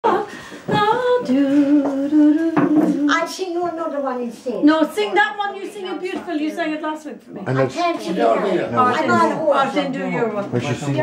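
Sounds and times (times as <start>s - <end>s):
person singing unaccompanied: 0.0s - 3.3s.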